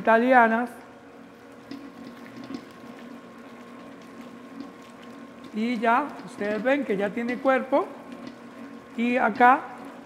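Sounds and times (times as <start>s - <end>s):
stand mixer motor hum: 0.9s - 10.0s.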